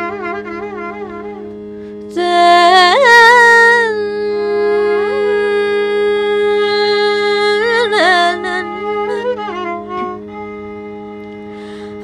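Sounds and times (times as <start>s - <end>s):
steady drone: 0.0s - 12.0s
violin accompaniment: 0.0s - 12.0s
woman singing: 2.1s - 9.7s.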